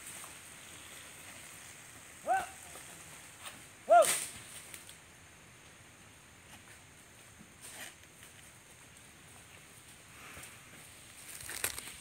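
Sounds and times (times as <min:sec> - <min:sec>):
person shouting: 0:02.3 - 0:02.6, 0:03.9 - 0:04.1
sharp crack: 0:03.9 - 0:05.0.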